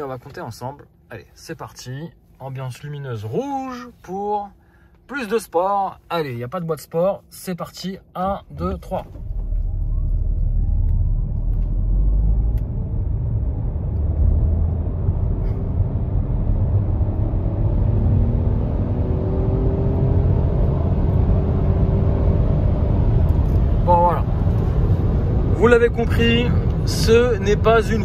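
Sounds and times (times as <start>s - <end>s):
road noise rumble: 8.3s - 28.0s
car engine accelerating hard: 8.6s - 28.0s
rising whine: 8.6s - 28.0s.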